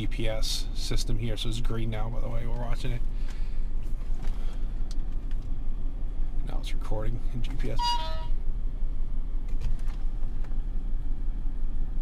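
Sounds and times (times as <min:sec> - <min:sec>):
car idling rumble: 0:00.0 - 0:12.0
short electronic beep: 0:07.8 - 0:08.3.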